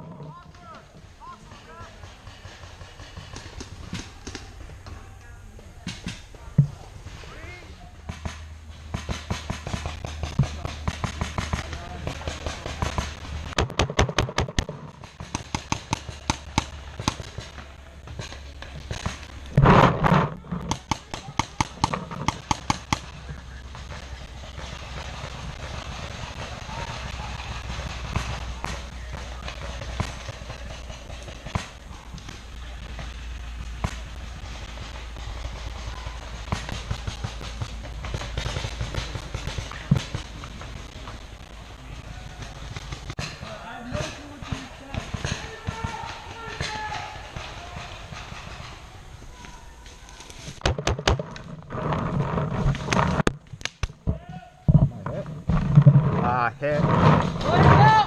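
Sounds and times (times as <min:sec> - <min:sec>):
paintball markers firing: 0:08.1 - 0:48.3.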